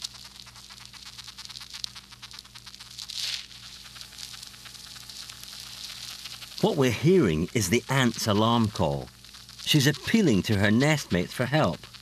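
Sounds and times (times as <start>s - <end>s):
ant stridulating scratchy ticks: 0.0s - 12.0s
microphone hiss: 0.0s - 12.0s.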